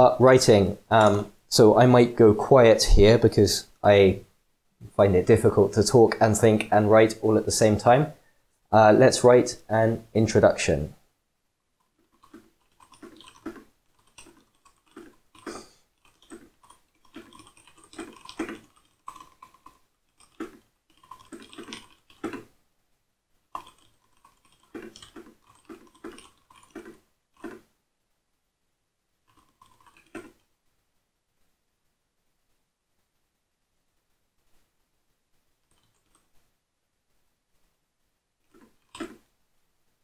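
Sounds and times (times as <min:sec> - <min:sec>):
typing on computer keyboard: 0:12.1 - 0:22.5, 0:23.6 - 0:27.6, 0:29.3 - 0:30.4.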